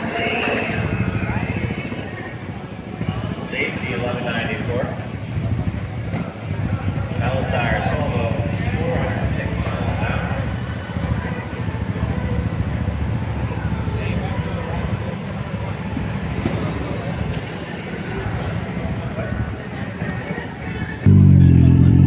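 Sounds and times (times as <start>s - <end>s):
people talking indistinctly: 0.1s - 21.0s
steady low rumble: 0.7s - 16.4s, 21.1s - 22.0s.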